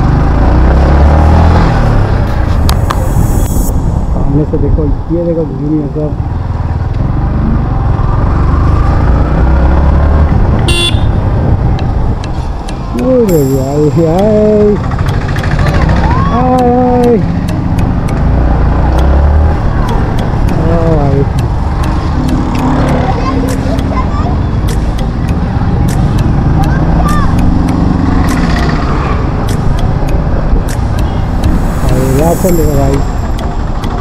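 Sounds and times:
motorcycle engine rumble: 1.6s - 34.0s
wind buffeting microphone: 10.3s - 13.0s
voices calling out: 12.6s - 18.3s, 19.4s - 34.0s.

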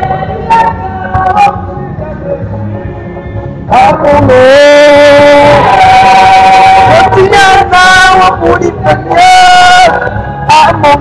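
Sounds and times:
backing voices: 0.0s - 11.0s
person singing long notes: 3.7s - 11.0s.

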